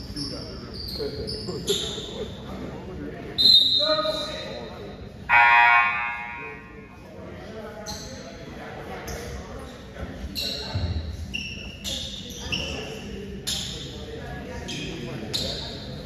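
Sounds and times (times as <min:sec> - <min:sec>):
voices in echoing hall: 0:00.0 - 0:16.0
referee's whistle blast: 0:05.3 - 0:06.6
buzzer horn: 0:05.3 - 0:06.8.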